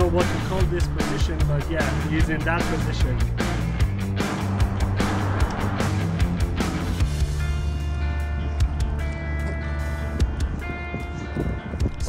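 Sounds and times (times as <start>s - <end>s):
sustained chords: 2.5s - 8.8s
held bass note: 3.0s - 7.5s.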